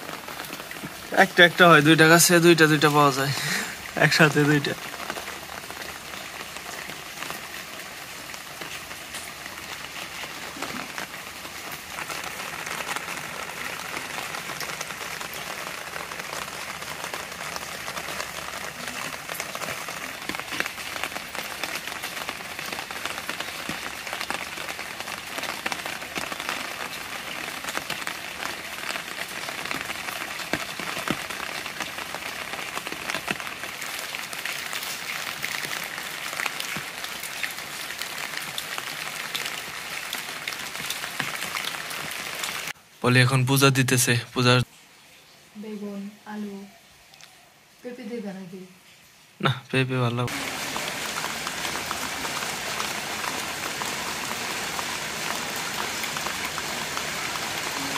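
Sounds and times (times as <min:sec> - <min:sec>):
rain pattering on water and leaves: 0:00.0 - 0:57.9.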